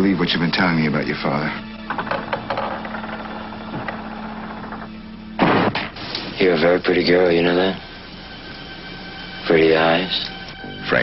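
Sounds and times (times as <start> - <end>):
faint hiss: 5.9 - 11.0.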